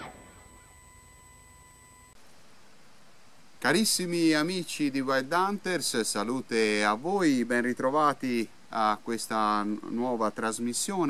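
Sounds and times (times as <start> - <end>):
faint background hiss: 0.0 - 11.0
thin faint steady tones: 0.0 - 11.0.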